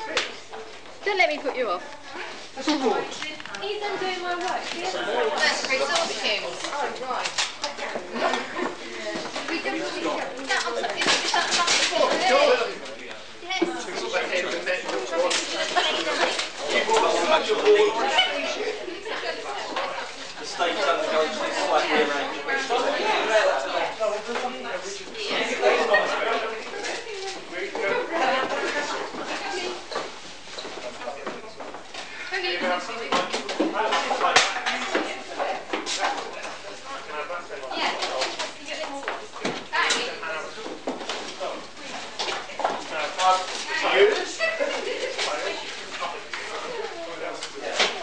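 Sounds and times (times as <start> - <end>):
people talking at once: 0.0 - 30.2.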